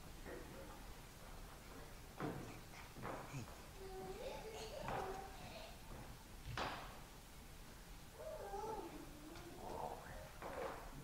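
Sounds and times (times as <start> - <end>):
child whining: 3.3 - 5.8, 8.2 - 10.0.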